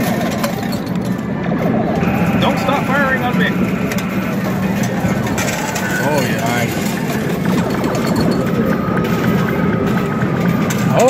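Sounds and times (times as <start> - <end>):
coins clattering: 0.0 - 1.3, 3.8 - 11.0
arcade machine music: 0.0 - 11.0.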